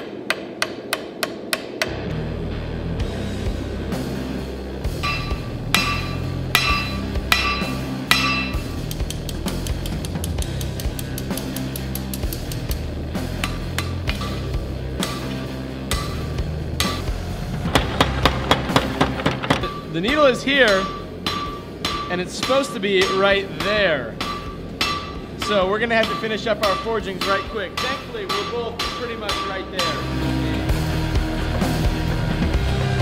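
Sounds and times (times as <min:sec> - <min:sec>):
background music: 0:01.8 - 0:33.0
hammer striking blade on anvil: 0:05.0 - 0:09.2, 0:13.4 - 0:19.9, 0:20.6 - 0:30.4.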